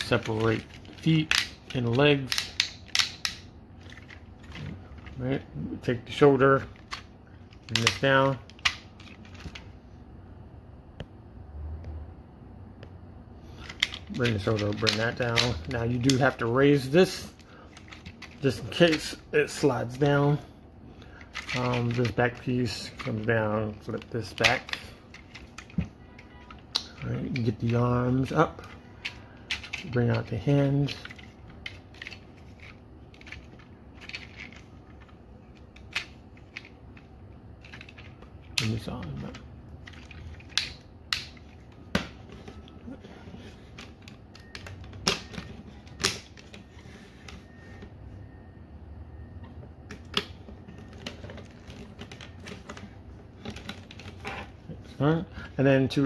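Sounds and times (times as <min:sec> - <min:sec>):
plastic toy parts clicking: 0:00.0 - 0:05.2, 0:06.8 - 0:09.6, 0:13.6 - 0:16.4, 0:21.2 - 0:25.8, 0:28.5 - 0:30.3, 0:30.9 - 0:41.4.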